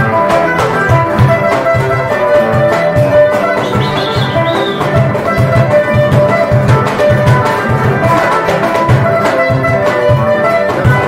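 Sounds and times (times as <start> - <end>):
acoustic guitars strumming and picking: 0.0 - 11.0
cajon drum beat: 0.0 - 11.0.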